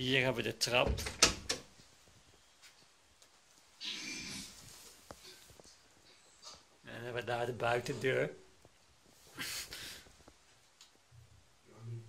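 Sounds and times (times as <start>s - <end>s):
breathy rush of noise: 9.1s - 10.3s.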